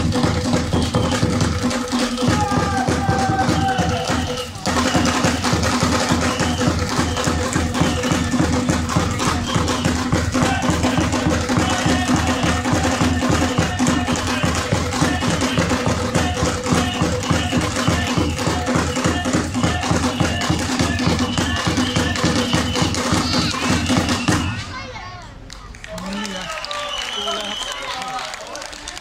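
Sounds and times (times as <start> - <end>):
hand drums playing fast rhythm: 0.0 - 24.6.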